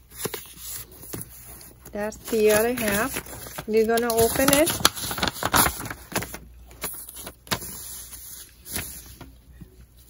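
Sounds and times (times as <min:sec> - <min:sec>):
paper crackles: 0:00.0 - 0:09.4
paper rustling: 0:00.0 - 0:09.4.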